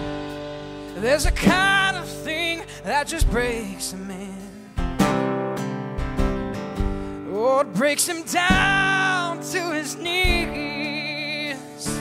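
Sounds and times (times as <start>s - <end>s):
acoustic guitar strummed: 0.0s - 12.0s
man singing: 0.9s - 5.0s, 7.2s - 12.0s.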